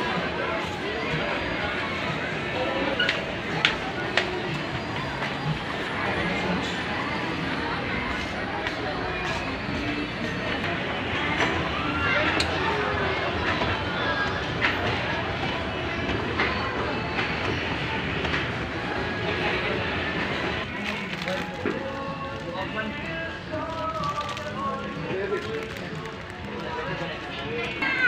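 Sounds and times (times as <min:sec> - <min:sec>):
people chattering: 0:00.0 - 0:28.0.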